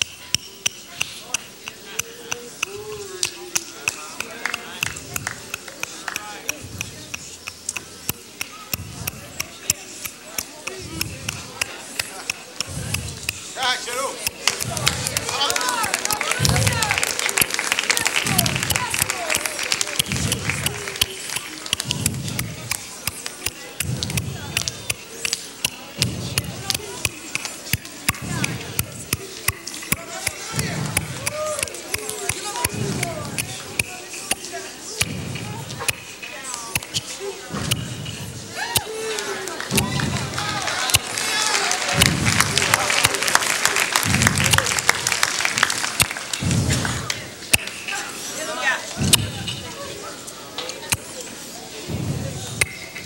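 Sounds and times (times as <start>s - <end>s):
sharp percussive hits: 0.0s - 38.9s, 41.9s - 43.2s, 43.9s - 47.9s
person speaking: 0.0s - 41.2s
voices shouting: 1.2s - 50.1s.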